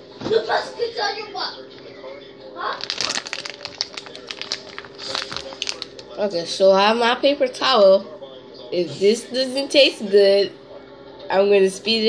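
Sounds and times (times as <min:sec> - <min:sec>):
plastic candy wrapper crinkling: 0:02.7 - 0:06.2.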